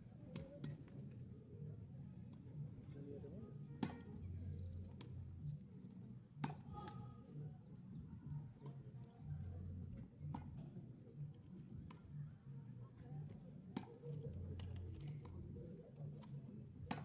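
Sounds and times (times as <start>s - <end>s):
tennis balls struck and bouncing: 6.4s - 6.7s, 13.7s - 15.4s.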